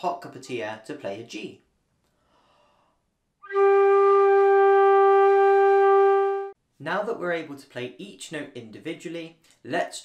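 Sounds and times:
flute playing a sustained note: 0:03.4 - 0:06.6.

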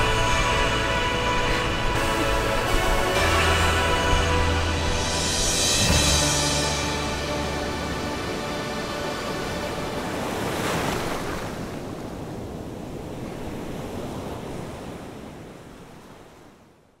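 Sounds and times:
surf washing onto beach: 0:05.8 - 0:16.3.

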